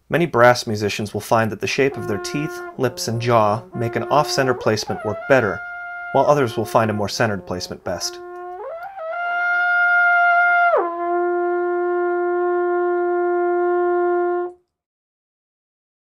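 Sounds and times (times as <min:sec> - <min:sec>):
brass instrument sustained note: 0:01.7 - 0:14.6.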